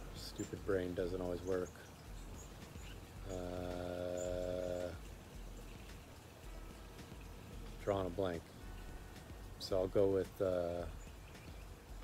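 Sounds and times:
faint low background noise: 0.0 - 12.0.

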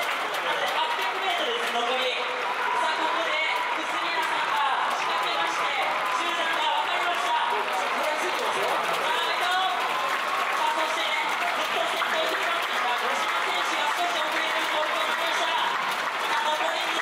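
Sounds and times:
crowd clapping: 0.0 - 17.0
crowd voices: 0.0 - 17.0.

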